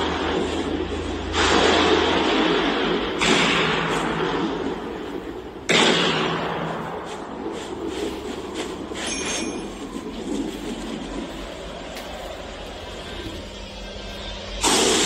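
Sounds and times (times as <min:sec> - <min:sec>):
steady rumbling noise: 0:00.0 - 0:15.0.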